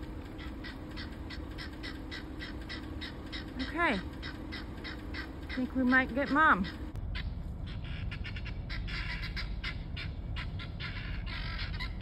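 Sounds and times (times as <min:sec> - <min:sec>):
guinea fowl calling: 0:00.0 - 0:12.0.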